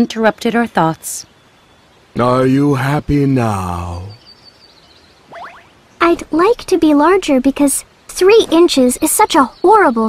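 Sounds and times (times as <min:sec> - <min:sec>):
forest ambience: 0:00.0 - 0:10.0
rising bird chirp: 0:00.7 - 0:10.0.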